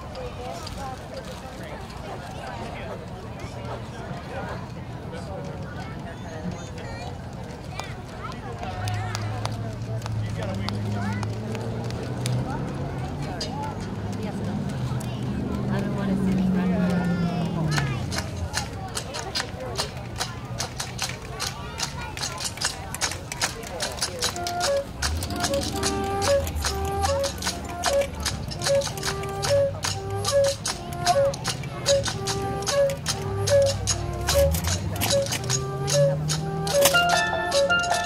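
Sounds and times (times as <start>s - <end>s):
drum and percussion strikes: 19.8s - 38.0s
steel pan melody: 24.2s - 38.0s.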